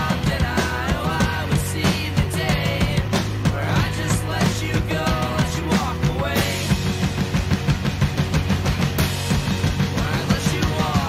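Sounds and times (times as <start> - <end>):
drum kit played hard: 0.0 - 11.0
sustained bass notes: 0.0 - 11.0.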